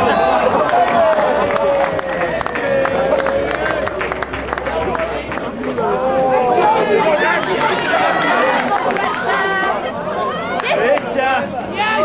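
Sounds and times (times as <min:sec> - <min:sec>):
crowd shouting and calling: 0:00.0 - 0:12.0.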